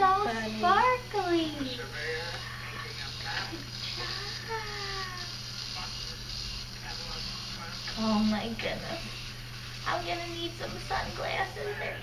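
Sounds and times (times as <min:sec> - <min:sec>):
electric toothbrush humming: 0:00.0 - 0:12.0.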